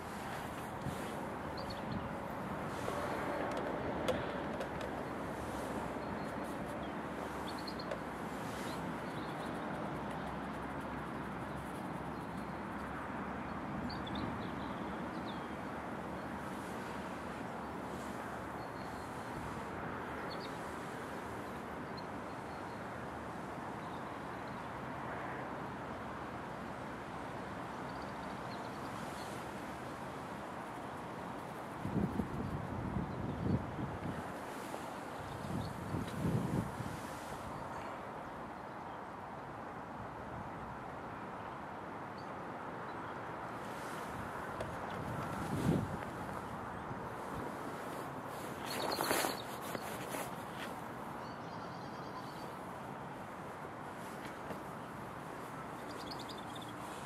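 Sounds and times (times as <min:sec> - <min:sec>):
wind buffeting microphone: 0:31.8 - 0:34.6, 0:35.2 - 0:37.6, 0:43.8 - 0:50.6
leaves rustling: 0:43.6 - 0:51.2.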